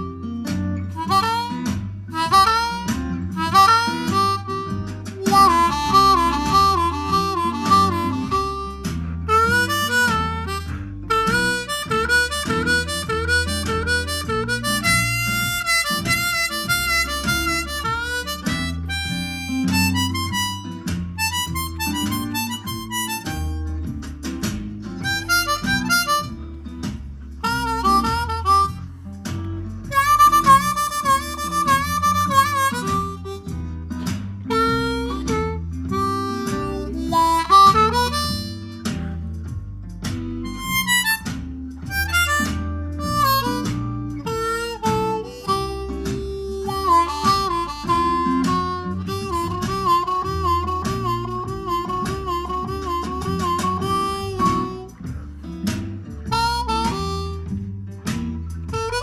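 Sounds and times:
blues backing track with guitar: 0.0s - 59.0s
bluesy harmonica: 0.0s - 59.0s.

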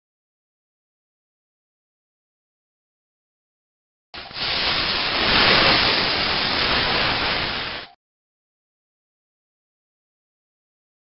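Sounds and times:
loud steady hiss: 4.2s - 8.0s.

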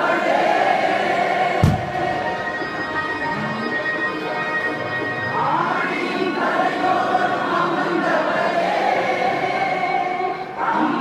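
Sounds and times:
choir singing a hymn: 0.0s - 3.8s, 5.2s - 11.0s.

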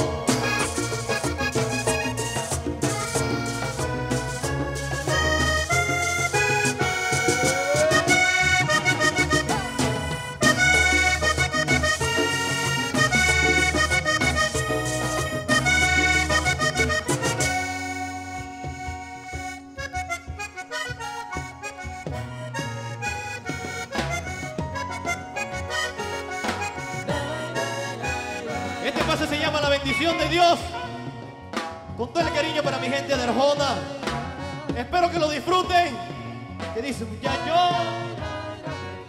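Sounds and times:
light percussion: 0.0s - 38.4s
band playing: 0.0s - 39.0s
bass: 0.0s - 39.0s
button accordion playing: 0.0s - 39.0s.

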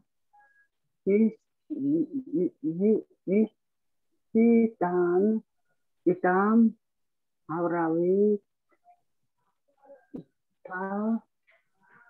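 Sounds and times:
woman reading aloud: 1.1s - 3.5s, 4.3s - 5.4s, 6.1s - 6.8s, 7.5s - 8.4s, 10.7s - 11.3s.

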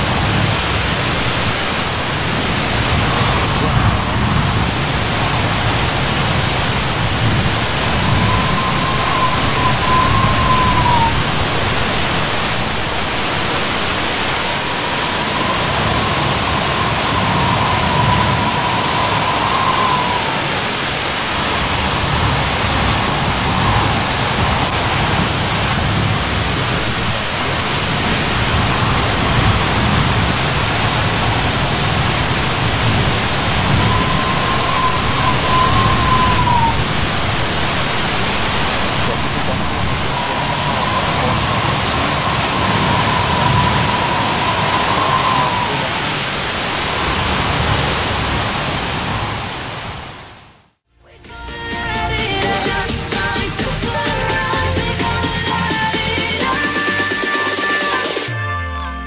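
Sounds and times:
waterfall roaring: 0.0s - 50.8s
faint whistle-like tone: 2.8s - 12.8s, 14.4s - 25.5s, 28.3s - 37.4s, 38.8s - 46.2s.

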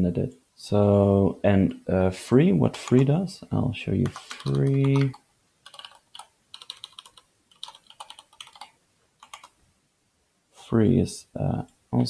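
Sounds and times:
computer keyboard typing: 2.8s - 3.1s, 4.0s - 9.6s.

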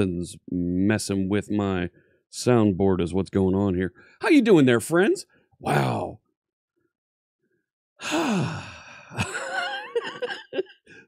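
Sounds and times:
man sighing heavily: 8.0s - 9.2s
man laughing: 9.1s - 11.0s.

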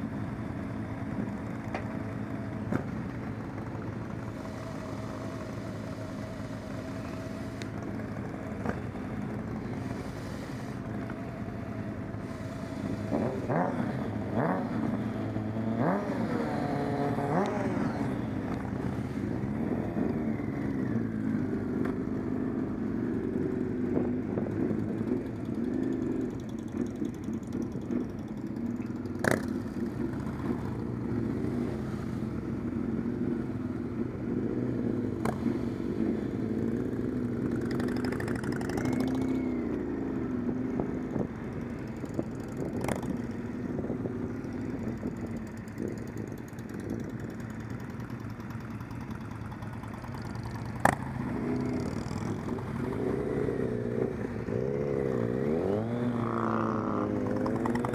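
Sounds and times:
motorcycle engines idling and pulling away: 0.0s - 57.9s.

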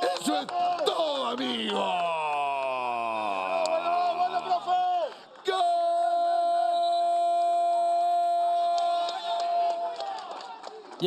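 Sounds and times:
commentator's drawn-out celebratory call: 0.0s - 10.5s.

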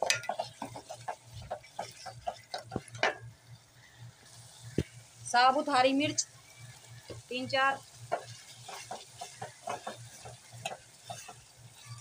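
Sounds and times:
spoon scraping a metal pot: 0.0s - 3.2s, 8.1s - 12.0s.

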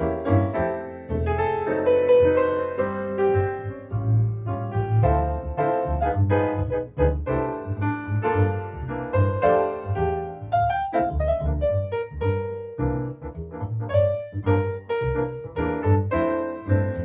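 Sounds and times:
double bass plucking low notes: 0.0s - 17.0s
grand piano playing melody: 0.0s - 17.0s.

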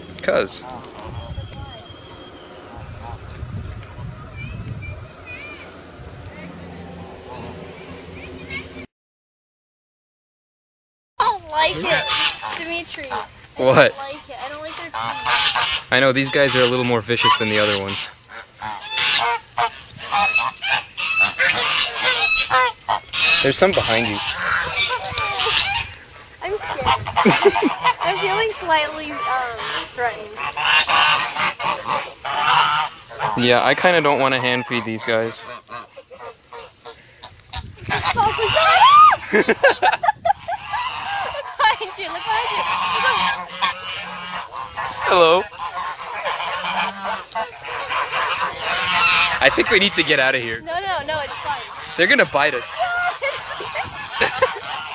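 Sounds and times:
geese honking: 0.0s - 8.8s, 11.2s - 54.9s.

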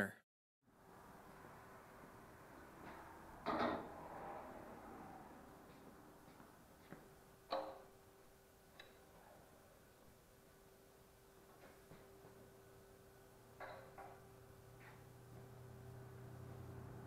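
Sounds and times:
faint steady hum: 0.7s - 17.0s
metal equipment clunking on concrete: 3.4s - 3.9s.

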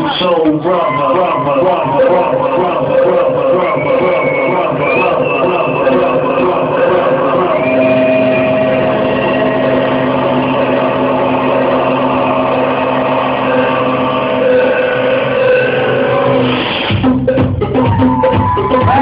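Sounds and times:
electronic dance music synth drone: 0.0s - 19.0s
percussion: 16.0s - 19.0s.

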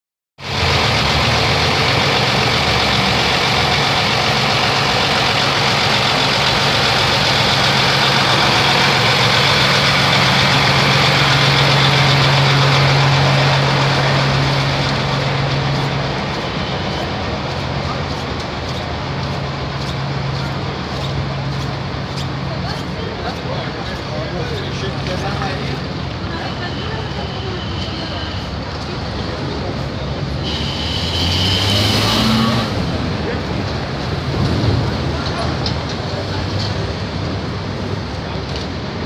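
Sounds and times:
diesel truck engine idling: 0.4s - 31.0s
street noise: 0.4s - 39.0s.

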